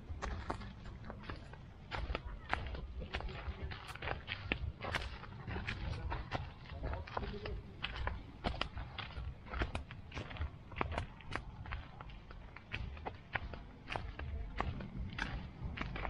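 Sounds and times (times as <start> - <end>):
footsteps crunching on gravel: 0.0 - 16.0
steady low rumble: 0.0 - 16.0.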